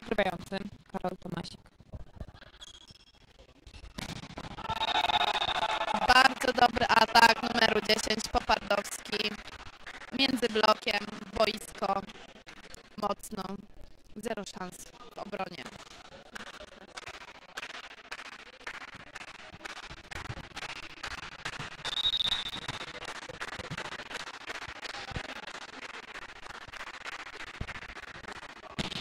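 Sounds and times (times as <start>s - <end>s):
referee's whistle blast: 4.6s - 6.4s, 21.8s - 22.8s
claps and knocks echoing in gym: 15.8s - 29.0s.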